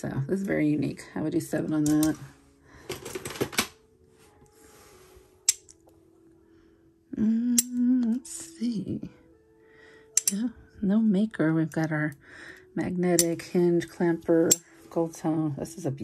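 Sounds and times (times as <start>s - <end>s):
metal jewelry clinking: 1.7s - 3.7s, 5.4s - 5.8s, 10.1s - 10.4s, 14.3s - 14.9s.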